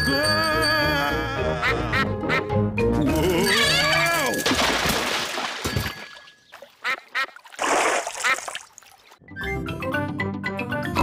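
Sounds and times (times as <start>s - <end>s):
ducks quacking: 6.8s - 7.4s.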